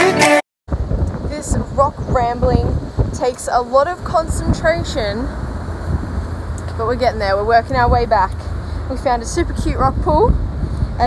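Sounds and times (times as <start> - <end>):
pop music with a beat: 0.0 - 0.4
wind buffeting microphone: 0.7 - 11.0.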